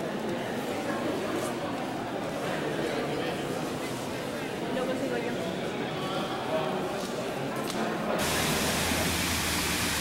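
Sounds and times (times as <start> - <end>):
murmur of voices in a hall: 0.0 - 9.2
fountain water splashing: 8.2 - 10.0.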